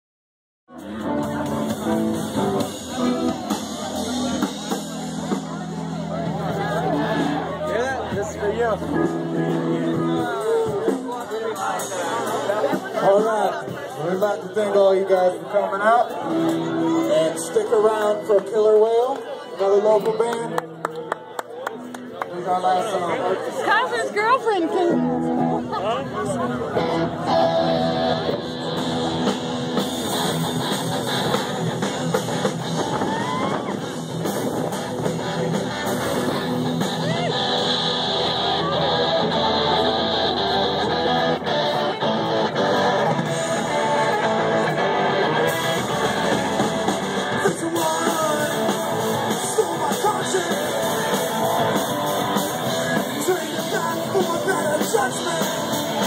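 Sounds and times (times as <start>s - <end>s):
drum kit: 0.7s - 14.1s, 26.7s - 56.0s
electric guitars: 0.7s - 56.0s.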